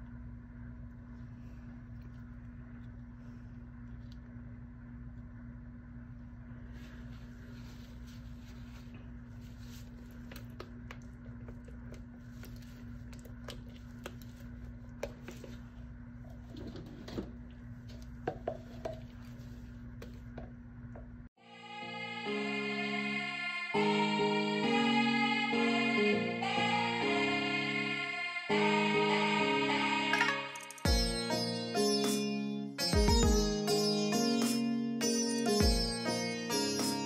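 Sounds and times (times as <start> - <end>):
low room hum: 0.0 - 21.3.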